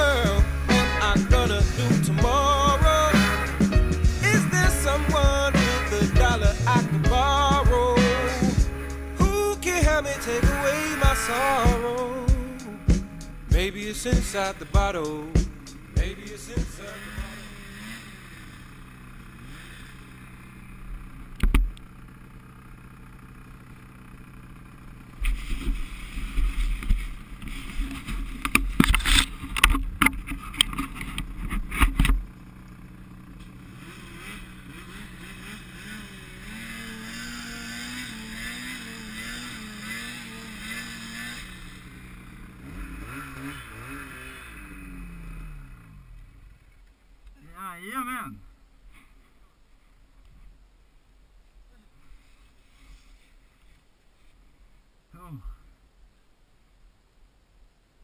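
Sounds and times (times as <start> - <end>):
snowmobile engines idling: 0.0 - 50.0.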